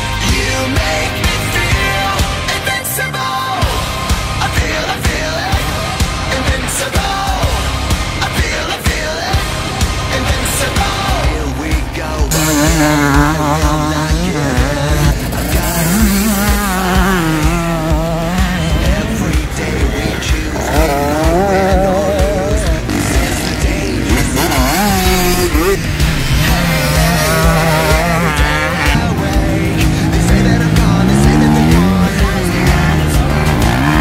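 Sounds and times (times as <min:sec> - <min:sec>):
loud music with held bass: 0:00.0 - 0:34.0
motorbike engines revving: 0:00.0 - 0:34.0.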